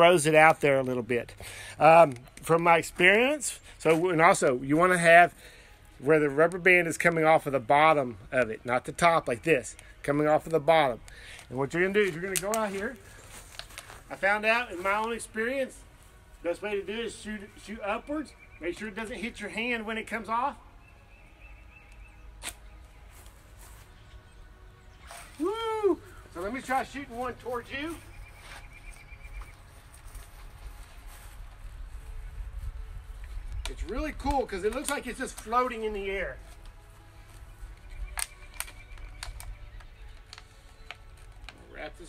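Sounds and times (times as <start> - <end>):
wind rumble on microphone: 31.4 - 34.6.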